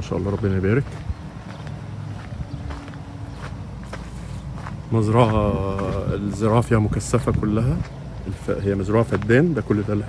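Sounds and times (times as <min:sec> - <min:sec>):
footsteps on sandy dirt: 0:00.0 - 0:10.0
low microphone rumble: 0:00.0 - 0:10.0.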